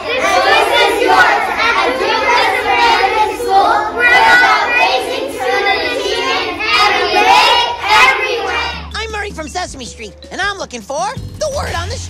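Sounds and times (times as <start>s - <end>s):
young children singing in unison: 0.0s - 8.9s.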